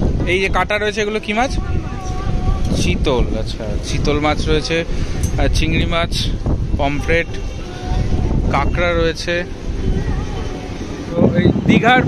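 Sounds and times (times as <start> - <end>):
low outdoor rumble: 0.0 - 12.0
man's voice: 0.1 - 10.2, 11.0 - 12.0.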